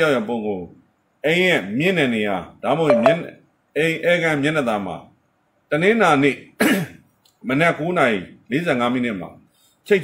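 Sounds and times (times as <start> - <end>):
throat clearing: 6.6 - 7.0.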